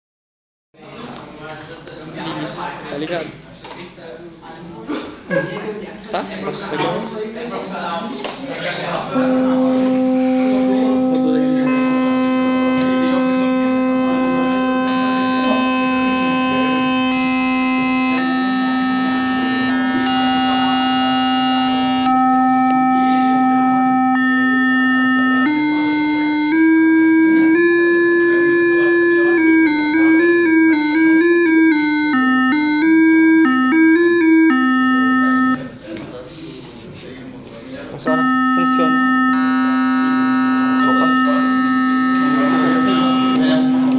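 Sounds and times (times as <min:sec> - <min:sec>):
held electronic synthesizer note: 0:09.1 - 0:35.7, 0:38.0 - 0:43.9
quick stepped synthesizer tune: 0:38.1 - 0:43.9.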